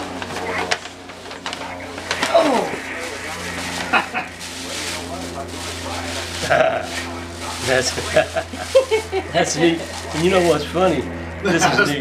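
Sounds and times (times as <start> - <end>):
paper bag rustling and crinkling: 0.0 - 10.8
steady low hum: 0.0 - 12.0.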